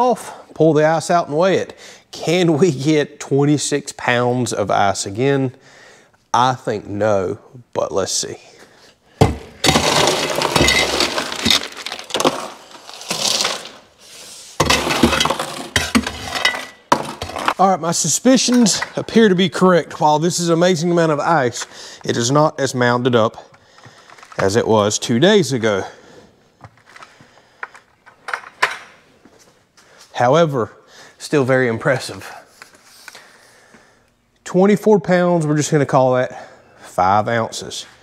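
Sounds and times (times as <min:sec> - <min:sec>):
ice cubes clattering and clinking: 0:09.4 - 0:13.9, 0:14.6 - 0:17.6.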